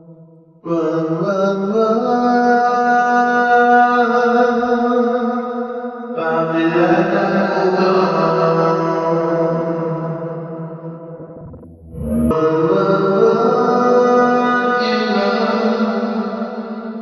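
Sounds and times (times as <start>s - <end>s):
reverberant singing: 0.0s - 5.0s, 6.1s - 17.0s.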